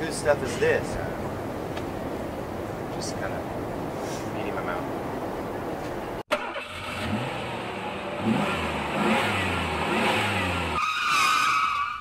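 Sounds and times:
high skidding squeal: 0:10.6 - 0:12.0.

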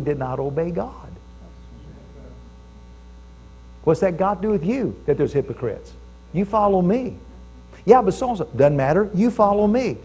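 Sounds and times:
man speaking: 0:00.0 - 0:02.5, 0:03.8 - 0:10.0
electrical mains hum: 0:00.0 - 0:10.0.

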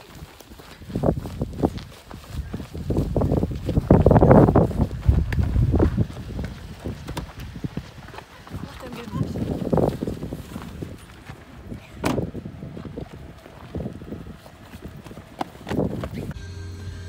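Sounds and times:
people running on grass and gravel: 0:00.0 - 0:16.4
voices: 0:08.0 - 0:09.7.

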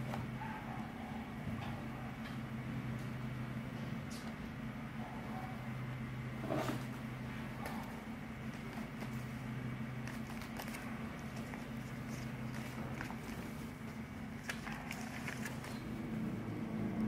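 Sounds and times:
steady low hum: 0:00.0 - 0:17.0
paper rustling: 0:07.7 - 0:16.0.

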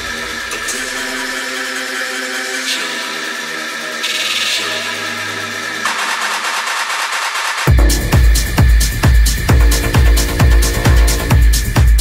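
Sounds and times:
techno bass: 0:00.0 - 0:12.0.

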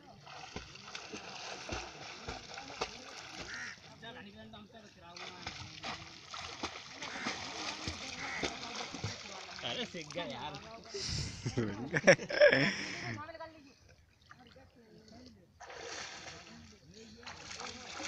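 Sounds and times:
river water splashing: 0:00.0 - 0:04.3, 0:05.0 - 0:11.0, 0:14.0 - 0:18.0
voices calling: 0:07.0 - 0:09.9.

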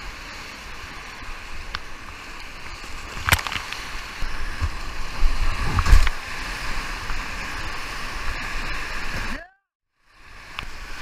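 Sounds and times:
water splashes: 0:00.0 - 0:09.4.

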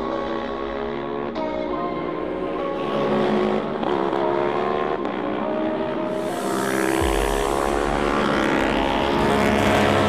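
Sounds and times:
background music: 0:00.0 - 0:10.0
racing motorcycles passing: 0:02.0 - 0:10.0.

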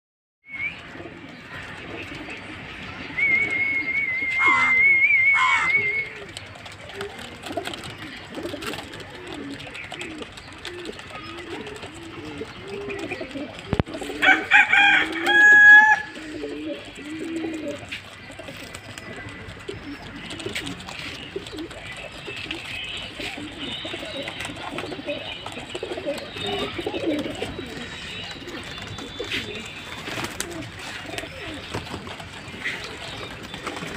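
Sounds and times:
pigeons cooing: 0:00.5 - 0:33.9
loud high-pitched call: 0:04.3 - 0:06.1.

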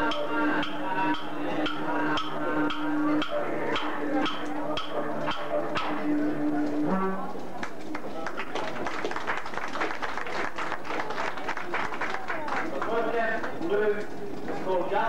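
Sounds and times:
clapsticks struck in a beat: 0:00.0 - 0:06.0.

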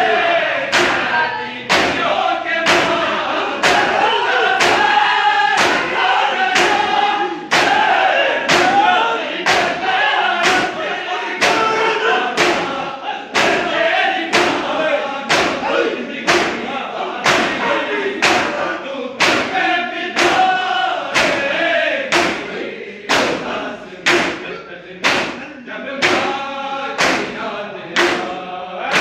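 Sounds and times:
men chanting a lament: 0:00.0 - 0:29.0
hands slapping bare chests: 0:27.0 - 0:27.4.

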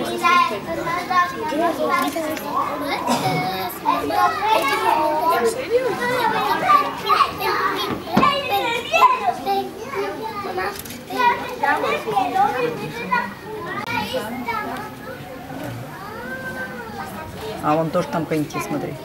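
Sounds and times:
children talking and calling out: 0:00.0 - 0:19.0.

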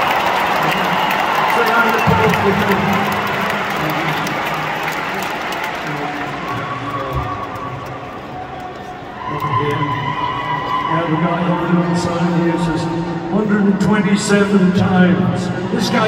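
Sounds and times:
crowd cheering and applauding: 0:00.0 - 0:13.6.

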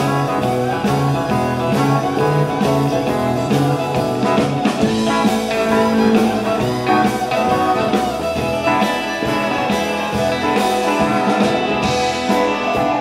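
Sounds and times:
guitar: 0:00.0 - 0:13.0
honky-tonk band playing: 0:00.0 - 0:13.0.

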